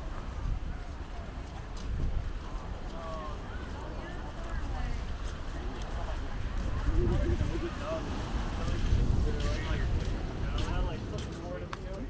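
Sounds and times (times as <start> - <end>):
people talking: 0.0 - 12.0
wind rumbling on microphone: 0.0 - 12.0.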